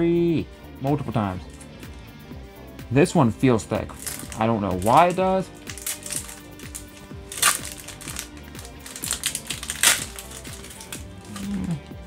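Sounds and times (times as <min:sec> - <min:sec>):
background music: 0:00.0 - 0:12.0
foil wrapper crinkling and tearing: 0:03.9 - 0:12.0.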